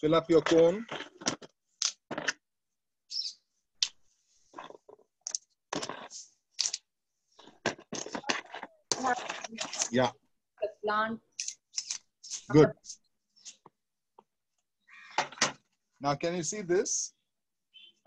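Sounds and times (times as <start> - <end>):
charcoal and stones rattling: 4.5 - 6.8, 7.4 - 10.1.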